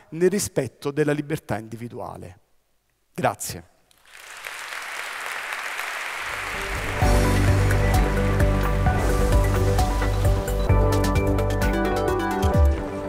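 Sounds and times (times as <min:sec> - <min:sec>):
audience applause: 0:04.0 - 0:10.5
theme music with strong bass: 0:06.5 - 0:13.0.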